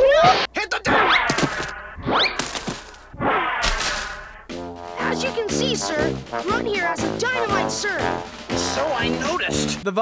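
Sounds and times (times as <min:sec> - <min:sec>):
brass music cue: 0:04.4 - 0:09.9.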